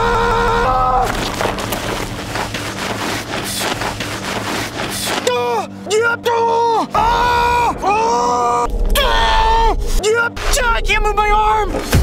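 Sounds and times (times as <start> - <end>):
body scuffling on gravelly dirt: 0.9 - 5.4.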